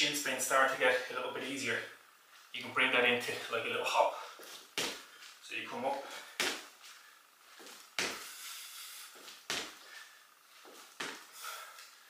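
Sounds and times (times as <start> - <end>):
shoe scuff: 9.2 - 11.3
trainers landing on laminate floor: 9.5 - 9.8, 10.7 - 11.2.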